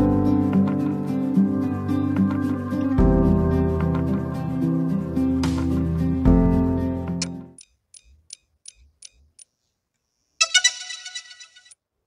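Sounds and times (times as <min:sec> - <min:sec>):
light ticks: 0:07.2 - 0:09.5.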